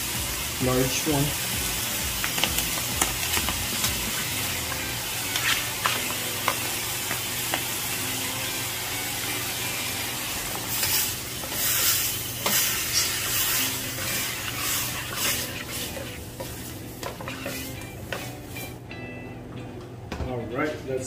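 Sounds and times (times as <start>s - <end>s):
squid sizzling in hot oil: 0.0s - 18.7s.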